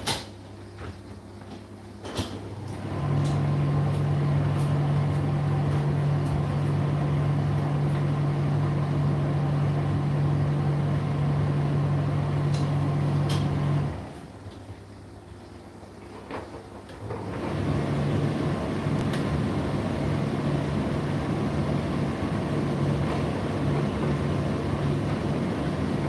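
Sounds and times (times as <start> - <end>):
tumble dryer pump hum: 0.0 - 26.0.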